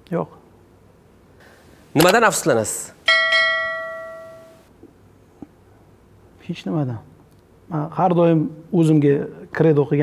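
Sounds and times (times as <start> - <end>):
bell-like chime: 3.1 - 4.6.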